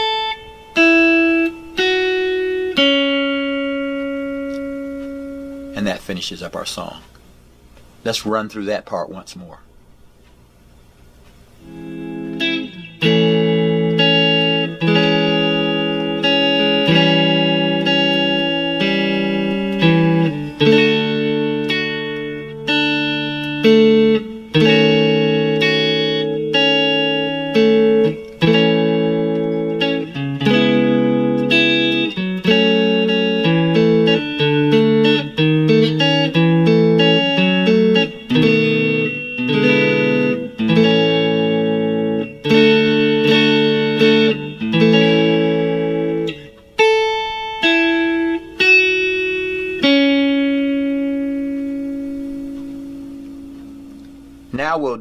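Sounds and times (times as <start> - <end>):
clean electric guitar chords: 0.0 - 6.1, 10.8 - 55.0.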